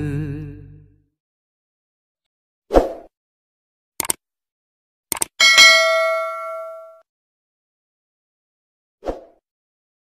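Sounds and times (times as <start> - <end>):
quick double clicks: 4.0 - 4.2, 5.1 - 5.4
notification bell ding: 5.4 - 7.0.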